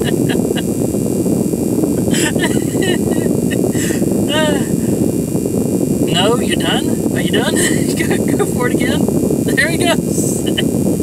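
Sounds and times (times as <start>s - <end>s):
faint voice: 0.0s - 0.6s, 2.0s - 4.9s, 6.1s - 10.6s.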